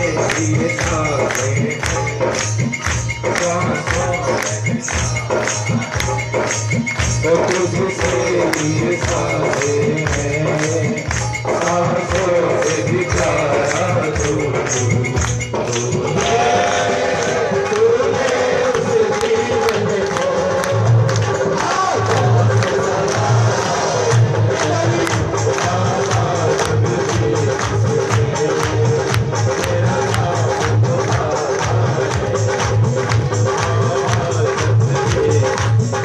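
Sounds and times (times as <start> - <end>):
devotional music with percussion: 0.0 - 36.0.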